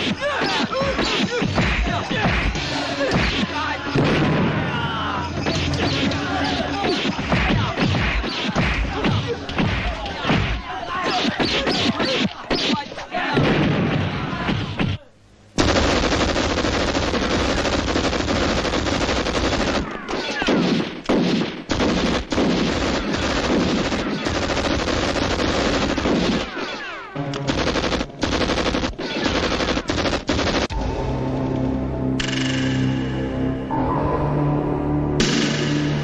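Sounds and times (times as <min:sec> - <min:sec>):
rapid gunfire: 0:06.8 - 0:14.8, 0:15.6 - 0:30.7.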